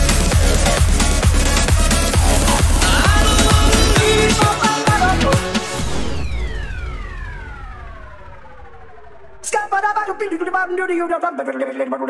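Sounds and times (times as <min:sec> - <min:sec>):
low bass rumble: 0:00.0 - 0:10.9
synth tone sweeping down: 0:02.1 - 0:10.7.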